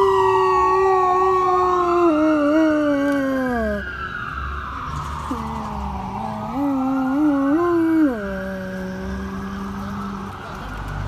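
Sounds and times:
dog howling: 0:00.0 - 0:03.9.

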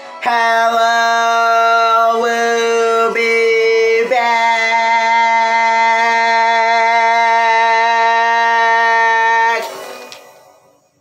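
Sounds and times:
young man singing held note: 0:00.0 - 0:10.9.

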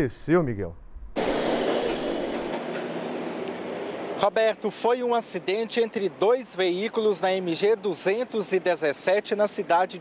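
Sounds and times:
street traffic noise: 0:01.2 - 0:10.0.

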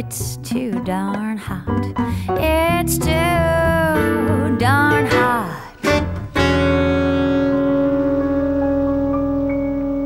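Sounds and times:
jazz band chord ringing: 0:02.6 - 0:10.0.

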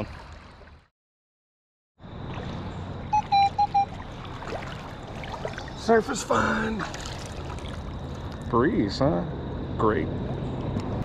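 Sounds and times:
flowing river water: 0:00.0 - 0:00.9, 0:02.0 - 0:08.5
metal detector beeps: 0:03.1 - 0:03.9.

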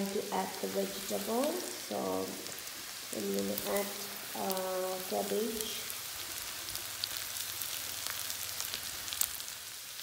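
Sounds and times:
meat and cabbage sizzling in pan: 0:00.0 - 0:10.0.

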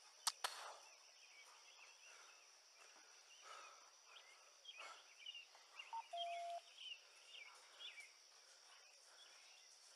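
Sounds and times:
short bird chirps: 0:04.8 - 0:07.0.

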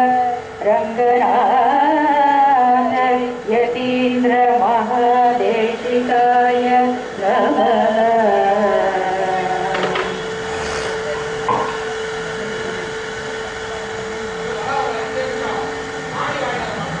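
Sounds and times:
women singing: 0:00.0 - 0:10.3
steady drone note: 0:00.0 - 0:17.0
scattered voices: 0:04.6 - 0:17.0.

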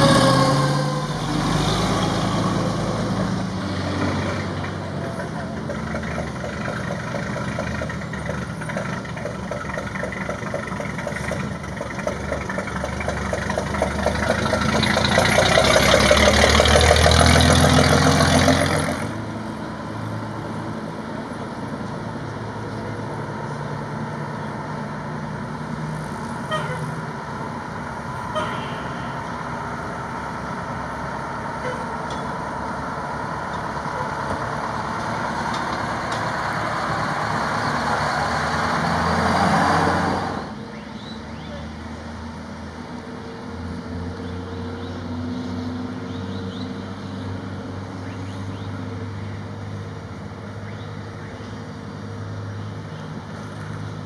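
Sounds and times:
fire truck engines running: 0:00.0 - 0:54.0.

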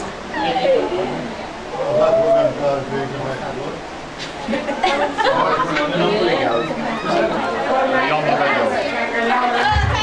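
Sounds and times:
chatter of several voices: 0:00.1 - 0:10.0.

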